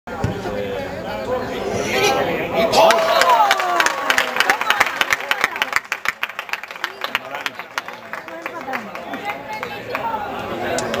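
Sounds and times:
small crowd clapping: 2.8 - 11.0.

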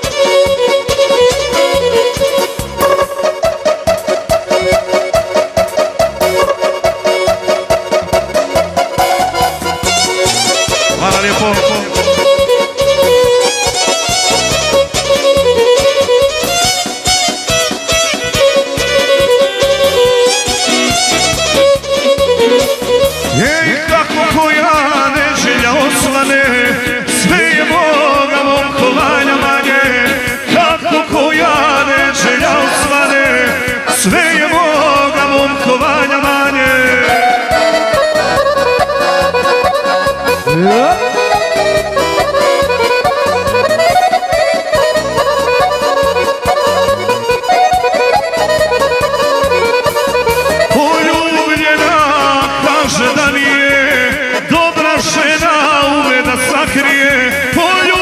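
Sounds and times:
fiddle melody with keyboard and beat: 0.0 - 58.0
folk dance music with accordion: 0.0 - 58.0
man singing: 10.6 - 12.7, 23.2 - 38.4, 40.4 - 42.6, 50.5 - 58.0.

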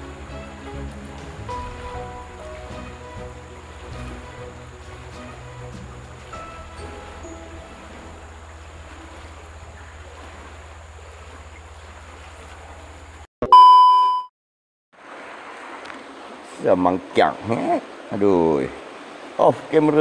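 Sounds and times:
outdoor noise: 0.0 - 13.3.

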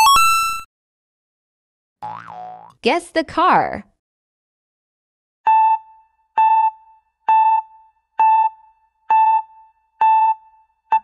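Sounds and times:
cartoon boing sound effect: 2.0 - 2.8
synthesized voice: 2.8 - 3.8.

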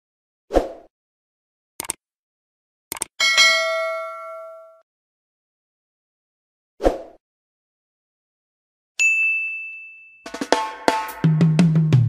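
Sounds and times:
bright bell-like ding: 3.2 - 4.8, 9.0 - 10.8.

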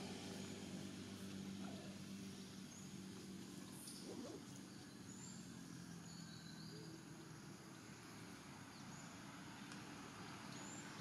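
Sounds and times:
faint high bird chirps: 3.7 - 7.6.

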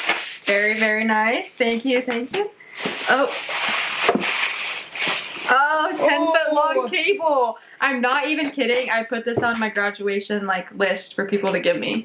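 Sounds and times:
packaging rustling and crackling: 2.8 - 5.6.

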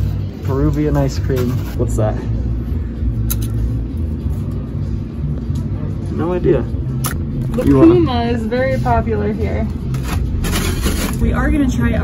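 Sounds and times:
steady low rumble: 1.8 - 12.0.

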